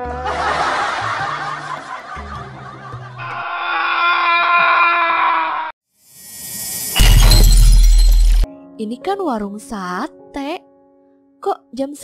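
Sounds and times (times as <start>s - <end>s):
glass shattering crash: 6.4s - 8.5s.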